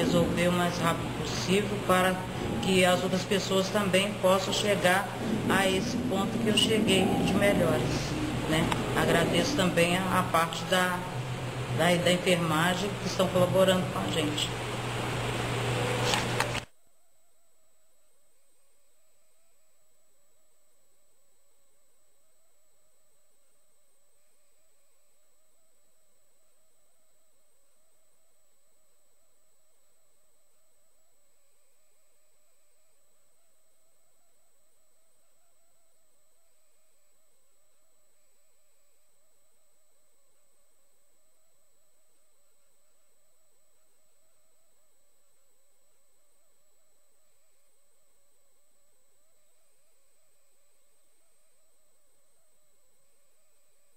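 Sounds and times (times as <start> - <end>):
high-pitched electronic whine: 0.0 - 53.9.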